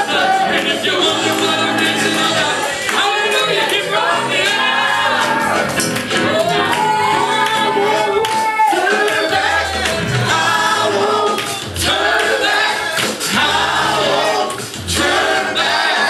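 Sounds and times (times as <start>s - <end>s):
instrumental backing with bass: 0.0s - 16.0s
voices singing over microphones: 0.0s - 16.0s.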